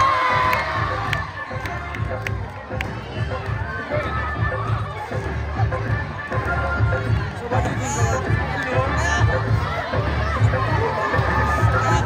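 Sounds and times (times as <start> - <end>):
children cheering and shouting: 0.0 - 6.7, 8.8 - 12.0
dance music beat: 0.0 - 12.0.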